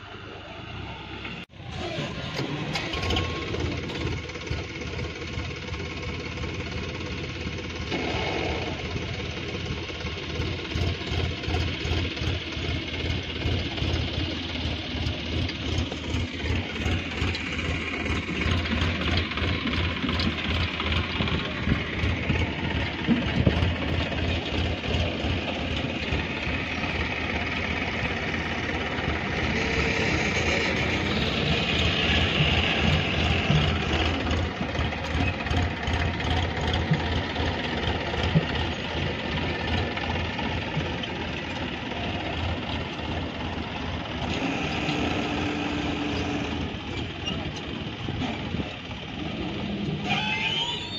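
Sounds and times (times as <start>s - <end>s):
diesel tractor engines running: 0.0s - 50.9s.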